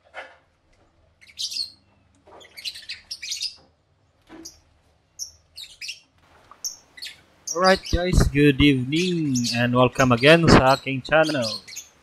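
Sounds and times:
lovebirds chirping: 1.2s - 3.6s, 4.3s - 12.0s.

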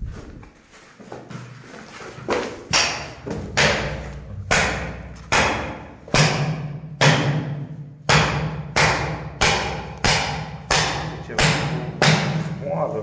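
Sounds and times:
hand tool striking and scraping: 2.1s - 12.6s.

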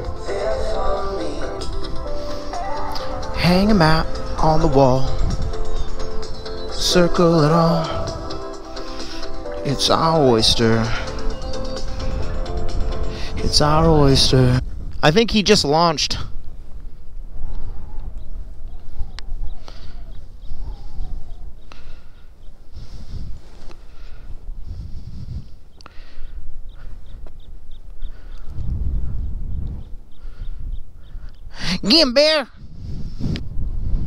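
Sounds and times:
wind rushing over microphone: 0.0s - 31.6s, 32.5s - 34.0s.

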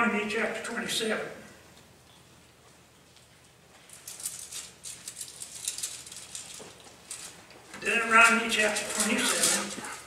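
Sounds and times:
thin pages rustling: 8.2s - 10.0s.

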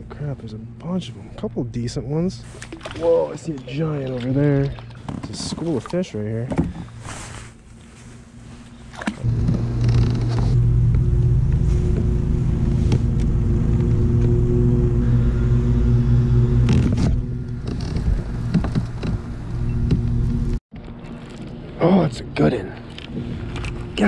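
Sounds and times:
motor humming: 9.0s - 20.6s.

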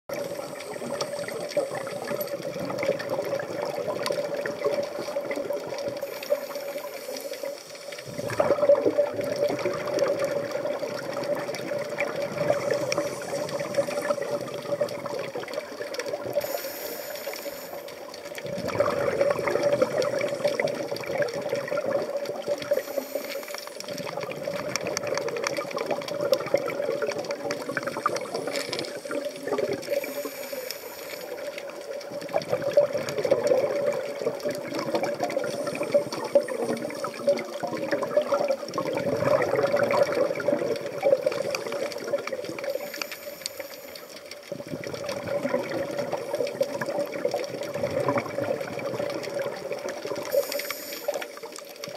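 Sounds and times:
underwater bubbles gurgling: 0.0s - 51.9s.

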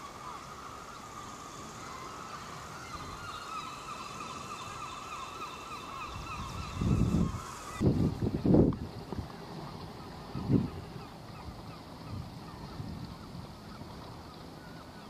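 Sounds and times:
seabirds calling: 0.0s - 15.0s
wind buffeting microphone: 1.1s - 15.0s.

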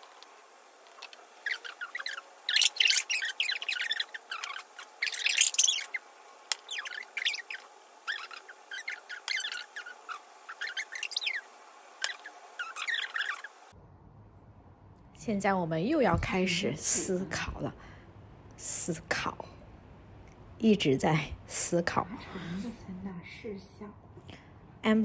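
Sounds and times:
high-pitched chirps and squeaks: 1.0s - 13.7s.

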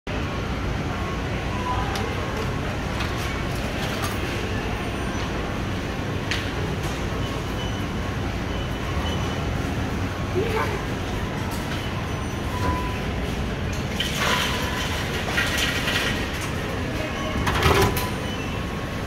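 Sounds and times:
steady mechanical hum: 0.1s - 19.0s.

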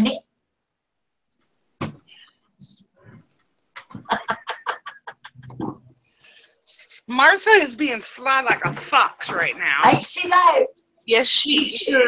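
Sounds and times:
woman laughing: 3.8s - 5.6s.

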